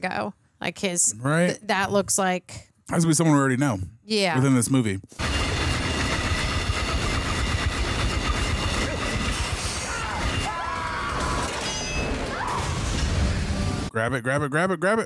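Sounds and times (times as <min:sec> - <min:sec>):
tense music: 0:05.2 - 0:13.9.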